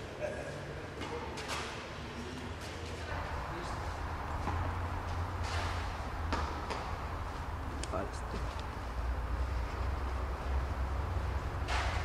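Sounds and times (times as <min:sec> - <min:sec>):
low hum of indoor hall: 0:00.0 - 0:12.0.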